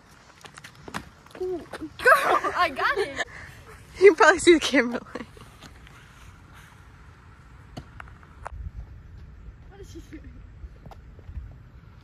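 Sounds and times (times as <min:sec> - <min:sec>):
wind rumbling on microphone: 0:08.1 - 0:12.0.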